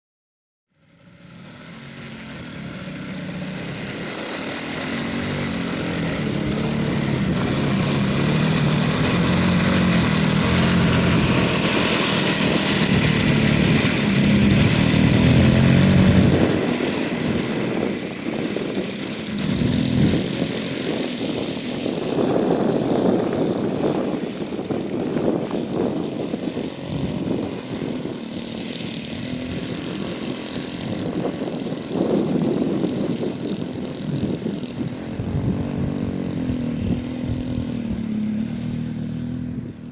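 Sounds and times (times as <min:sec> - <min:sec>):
model airplane engine running: 0:00.7 - 0:39.9.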